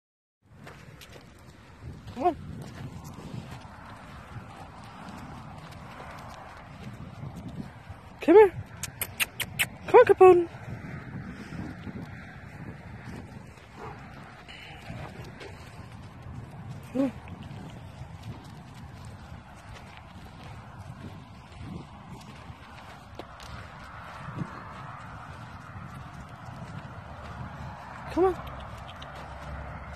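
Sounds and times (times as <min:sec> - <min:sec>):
footsteps on stony dirt: 0:00.5 - 0:09.8, 0:10.6 - 0:29.9.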